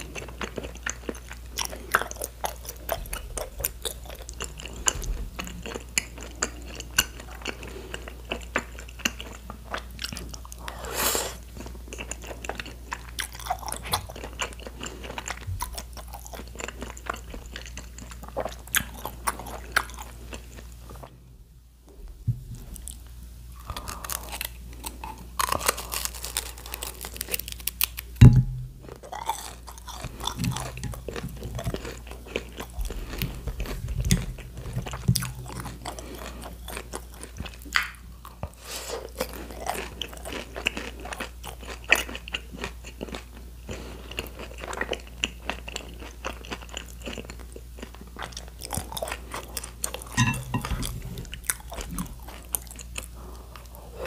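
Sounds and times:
crunchy bites and wet chewing: 0:22.6 - 0:53.8
sharp low thump: 0:28.2 - 0:28.8.

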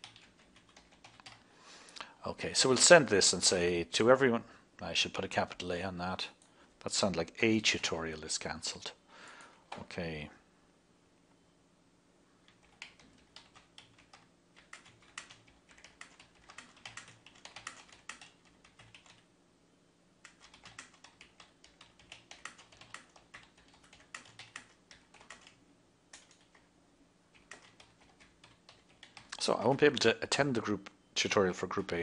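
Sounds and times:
typing on a computer keyboard: 0:00.0 - 0:01.4, 0:12.4 - 0:19.2, 0:20.2 - 0:26.7, 0:27.3 - 0:29.8.

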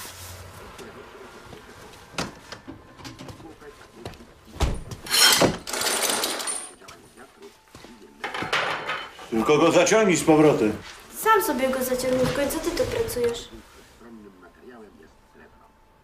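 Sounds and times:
metal chain rattling: 0:05.1 - 0:06.8.

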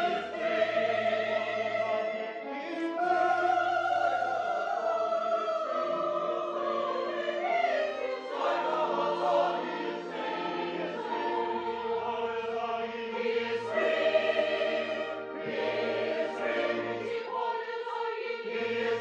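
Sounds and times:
chorus singing: 0:00.0 - 0:19.0.

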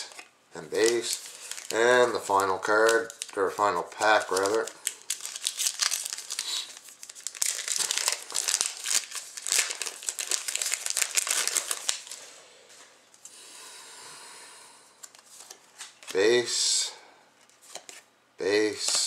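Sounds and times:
cards rustling: 0:00.0 - 0:12.4, 0:17.4 - 0:18.0
foil wrapper crinkling and tearing: 0:00.8 - 0:12.2.

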